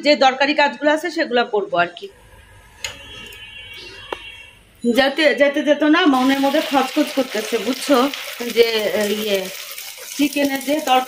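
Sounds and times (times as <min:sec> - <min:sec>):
woman speaking: 0:00.0 - 0:02.1, 0:04.8 - 0:09.6, 0:10.2 - 0:11.0
food sizzling in a pan: 0:06.1 - 0:11.0.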